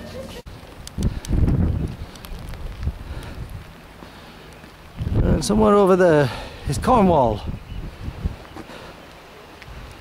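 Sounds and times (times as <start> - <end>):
rain falling: 0.0 - 10.0
wind buffeting microphone: 0.5 - 4.0, 4.7 - 8.7.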